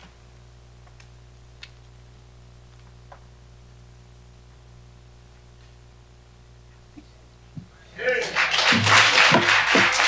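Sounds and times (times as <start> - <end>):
voice calling out: 7.8 - 8.4
audience applauding: 8.0 - 10.0.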